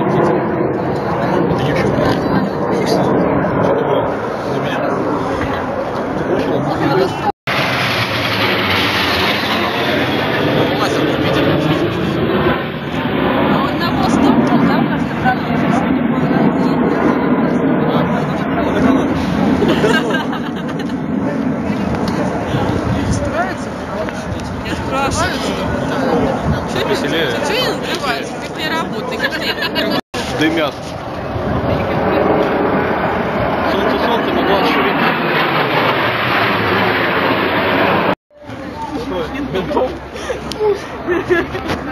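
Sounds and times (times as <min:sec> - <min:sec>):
voices: 0:00.0 - 0:07.3, 0:08.3 - 0:41.9
jet aircraft rushing overhead: 0:00.0 - 0:41.9.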